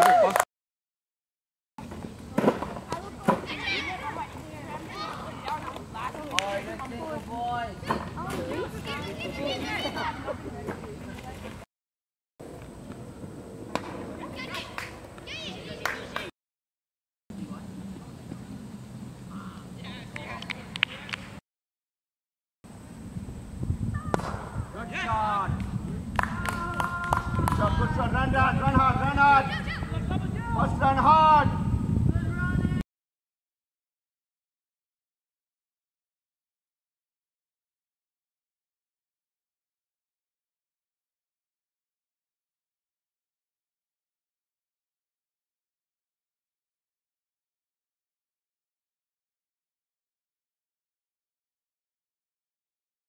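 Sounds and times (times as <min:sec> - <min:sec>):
cricket bat hitting ball: 0:24.1 - 0:24.6.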